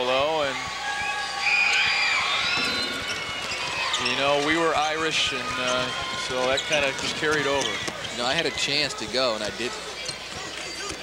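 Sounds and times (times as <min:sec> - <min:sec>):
crowd noise: 0:00.0 - 0:11.0
shoe squeaks on hardwood court: 0:02.6 - 0:04.5, 0:05.6 - 0:08.3, 0:10.0 - 0:11.0.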